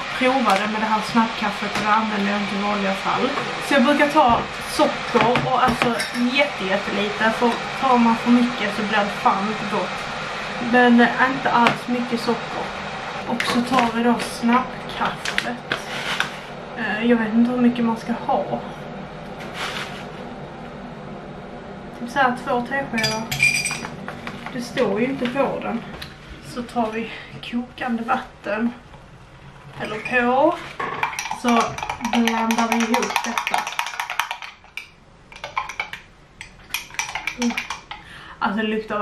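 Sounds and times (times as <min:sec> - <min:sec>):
spoon clinking against glass: 0:23.0 - 0:23.9
teaspoon stirring in glass: 0:31.0 - 0:38.0.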